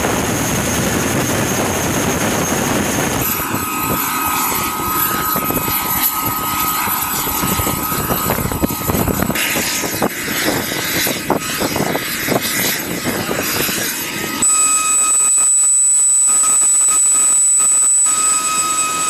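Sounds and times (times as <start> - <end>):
helicopter running with high whine: 0.0 - 19.0.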